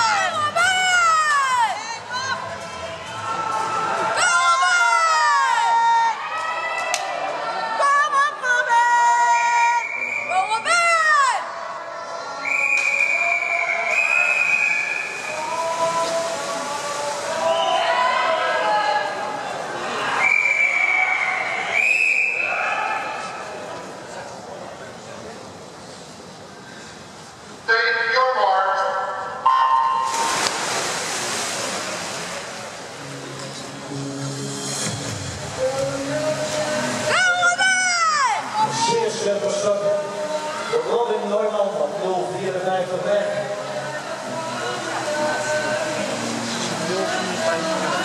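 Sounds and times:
crowd cheering: 2.7 - 16.2
referee's long whistle blast: 9.8 - 10.5, 12.4 - 15.4, 20.2 - 22.6
water splashing: 12.7 - 19.9, 29.5 - 33.9, 34.9 - 42.4.

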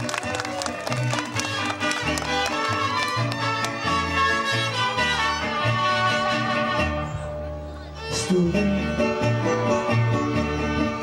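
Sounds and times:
bass line: 0.0 - 11.0
live band playing latin music: 0.0 - 11.0.

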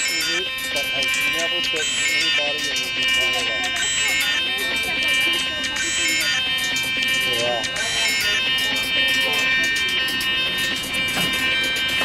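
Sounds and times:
synthesizer drone: 0.0 - 12.0.

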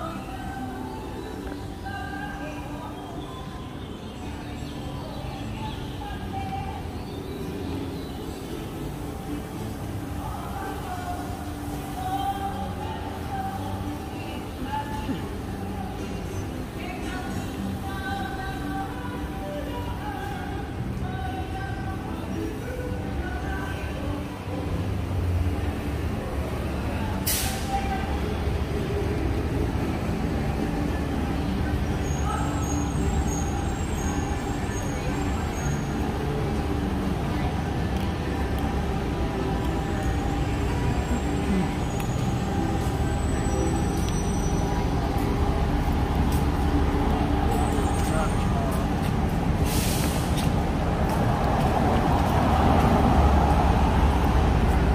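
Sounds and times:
people talking: 0.0 - 7.9, 9.9 - 54.9
street traffic rumble: 0.0 - 54.9
short sharp hiss: 27.3 - 27.7, 49.6 - 50.5.

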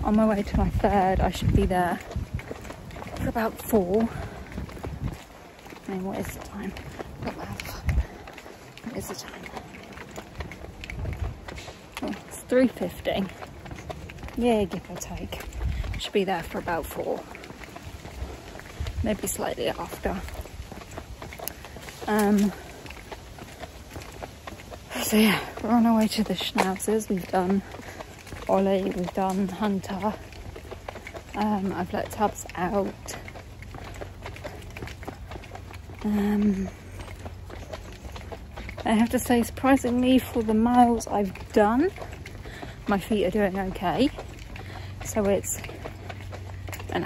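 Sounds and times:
footsteps walking: 0.0 - 47.0
wind rumbling on microphone: 0.0 - 47.0.

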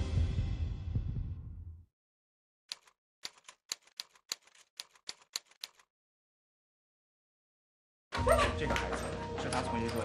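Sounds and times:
typewriter keys clacking: 2.7 - 5.9.

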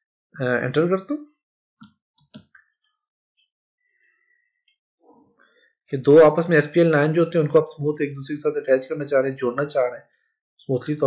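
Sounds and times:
keyboard and mouse clicks: 1.8 - 2.6.

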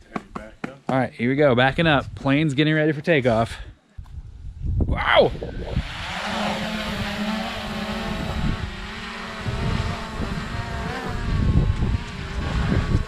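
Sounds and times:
drone propellers buzzing: 5.4 - 13.0.

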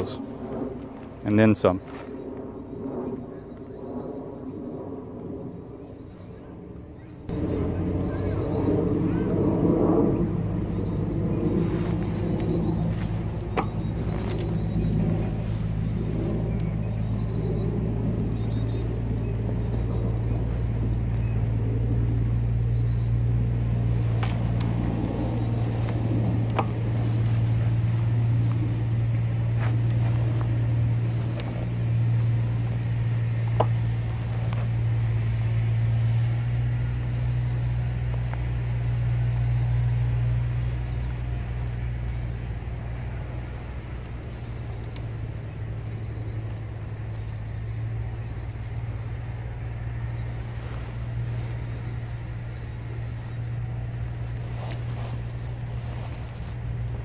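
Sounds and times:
low engine drone: 0.0 - 57.0
outdoor background noise: 0.0 - 57.0.

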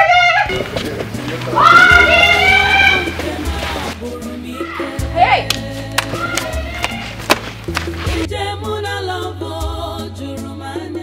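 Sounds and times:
sustained bass notes: 0.0 - 8.8.

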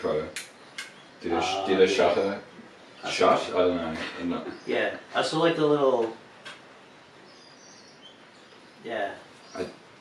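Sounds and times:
faint high chirp: 7.2 - 9.8.

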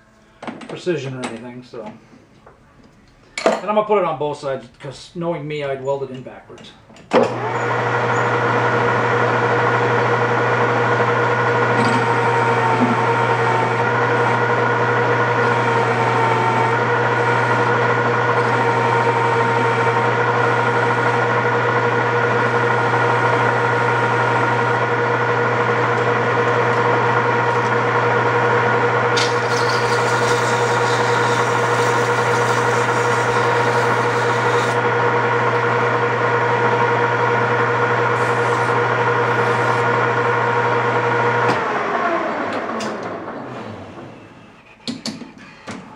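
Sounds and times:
metal lathe running: 7.2 - 42.5
cutting tool hiss: 29.2 - 34.8.

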